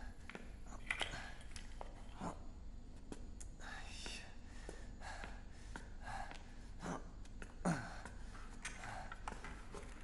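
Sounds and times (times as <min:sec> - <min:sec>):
person whispering: 0:03.6 - 0:04.4.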